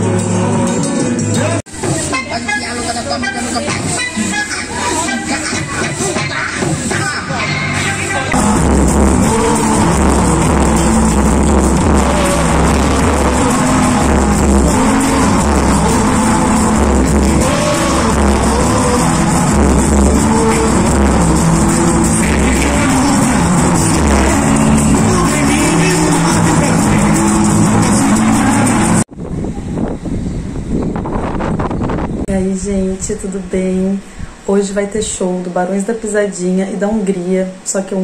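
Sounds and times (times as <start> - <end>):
live samba band playing: 0.0 - 29.0
pulsing bass line: 7.3 - 29.2.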